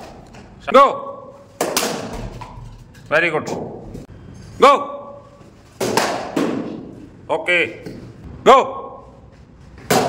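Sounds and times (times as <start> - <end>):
cricket bats striking balls: 1.5 - 2.3, 5.8 - 7.0, 9.8 - 10.0.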